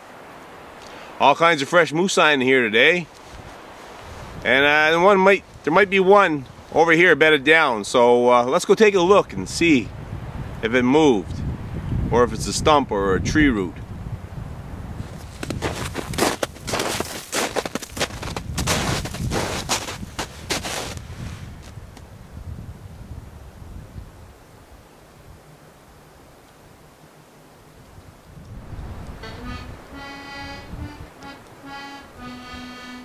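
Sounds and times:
faint hiss: 0.0s - 12.6s, 21.0s - 33.0s
loud crunching knocks: 15.2s - 21.0s
accordion music: 29.2s - 33.0s.

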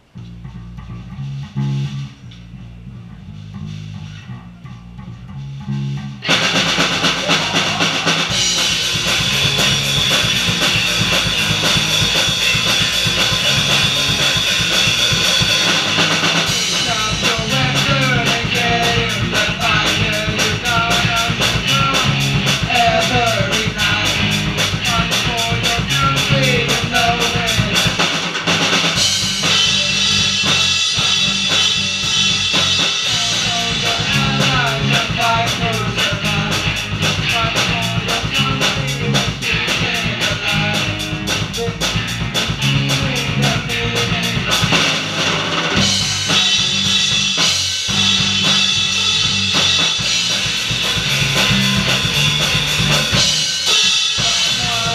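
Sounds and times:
bass guitar riff: 0.0s - 54.9s
live rock band playing: 6.2s - 54.9s.

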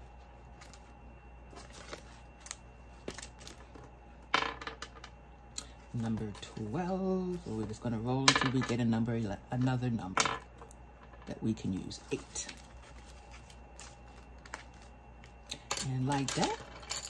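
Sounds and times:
paper and plastic rustling: 1.5s - 3.8s, 12.1s - 15.0s.

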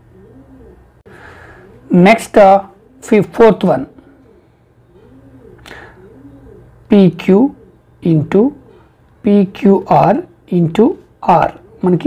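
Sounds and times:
pigeon cooing: 0.0s - 12.0s.

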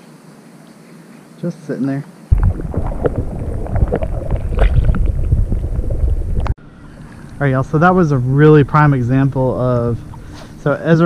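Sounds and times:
muffled underwater sloshing: 2.3s - 10.8s.

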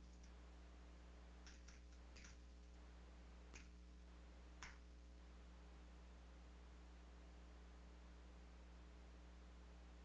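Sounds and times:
faint computer clicks: 0.0s - 0.4s, 1.4s - 2.8s
low steady hum: 0.0s - 10.0s.

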